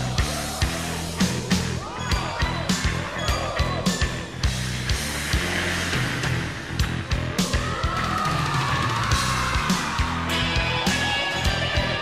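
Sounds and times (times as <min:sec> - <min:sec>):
rock song: 0:00.0 - 0:12.0.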